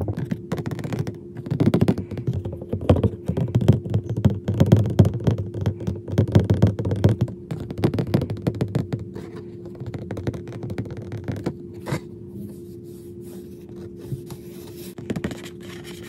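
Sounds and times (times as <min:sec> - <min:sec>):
scratching lottery ticket: 0:13.1 - 0:16.0.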